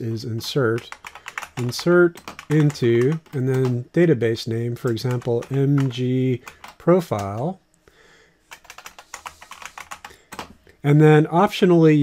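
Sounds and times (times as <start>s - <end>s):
man speaking: 0.0s - 7.6s, 10.8s - 12.0s
computer keyboard typing: 0.4s - 3.8s, 4.7s - 7.6s, 8.5s - 10.6s.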